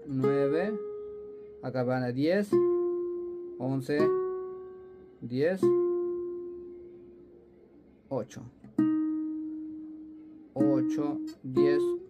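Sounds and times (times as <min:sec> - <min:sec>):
classical guitar note ringing: 0:00.0 - 0:07.2, 0:08.7 - 0:12.0.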